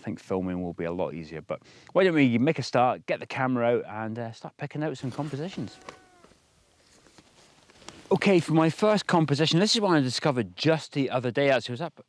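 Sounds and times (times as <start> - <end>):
faint animal call: 5.2 - 6.5.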